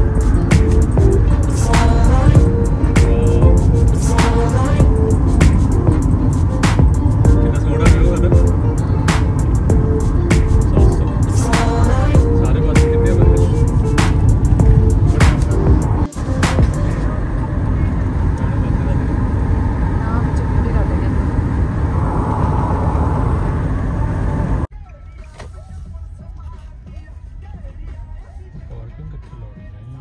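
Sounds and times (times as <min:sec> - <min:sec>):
music playing: 0:00.0 - 0:18.4, 0:24.6 - 0:30.0
car road and engine rumble: 0:00.0 - 0:28.4.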